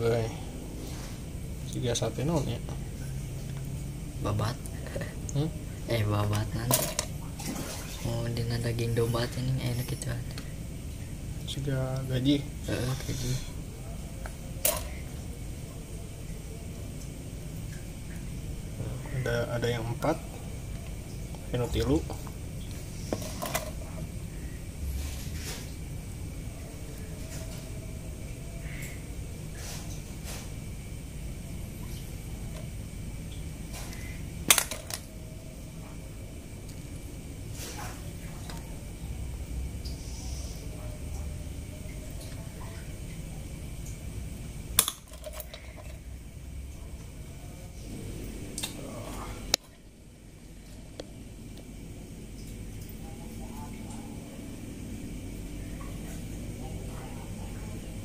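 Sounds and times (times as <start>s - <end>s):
low background hum: 0.0s - 58.0s.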